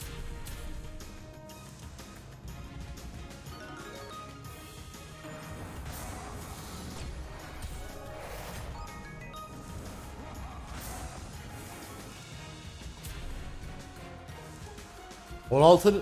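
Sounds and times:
slot game background music: 0:00.0 - 0:16.0.

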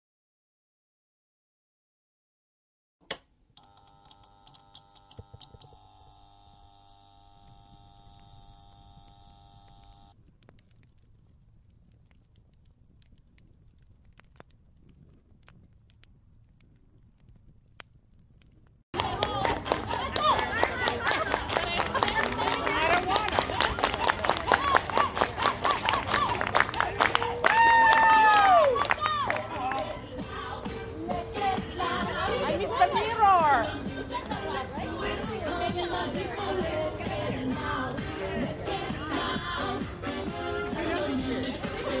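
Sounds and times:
electric hum of several tones: 0:03.2 - 0:10.2
irregular ticks: 0:07.3 - 0:18.8
rhythmic clapping: 0:19.0 - 0:42.0
voices calling out: 0:19.0 - 0:42.0.

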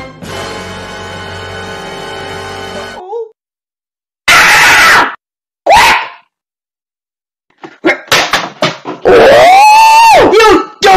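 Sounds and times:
angry cartoon voice yelling: 0:09.1 - 0:10.9.

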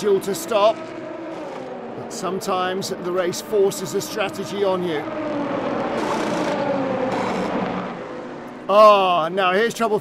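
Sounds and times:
race car engine passing: 0:00.0 - 0:09.0.

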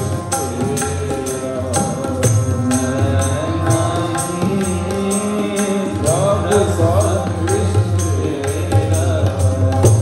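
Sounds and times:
man singing: 0:00.0 - 0:10.0
tabla strokes: 0:00.0 - 0:10.0.

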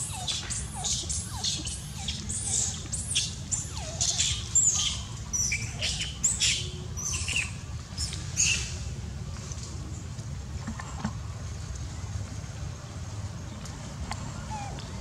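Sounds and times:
baby monkey squeaky calls: 0:00.0 - 0:07.5
steady low rumble: 0:11.3 - 0:15.0.

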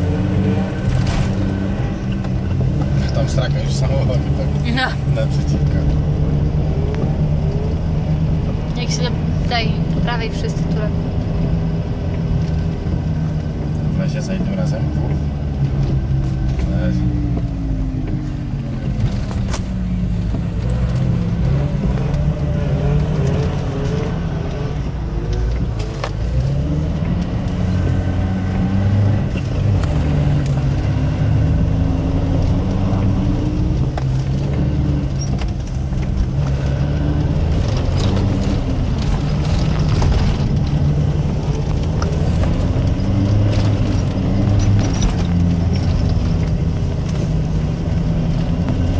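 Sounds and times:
car engine and road noise: 0:00.0 - 0:48.9.

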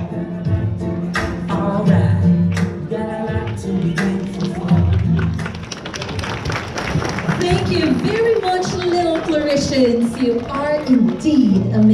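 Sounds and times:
pop song over sound system: 0:00.0 - 0:05.8, 0:07.4 - 0:11.9.

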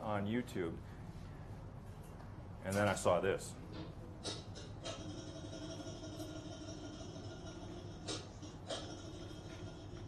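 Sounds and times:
mechanical hum with steady tones: 0:00.0 - 0:10.0.

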